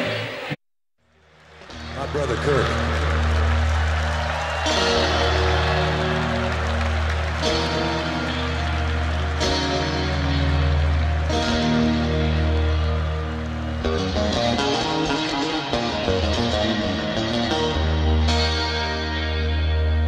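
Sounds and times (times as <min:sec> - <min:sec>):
band playing sustained chords: 0:01.5 - 0:20.0.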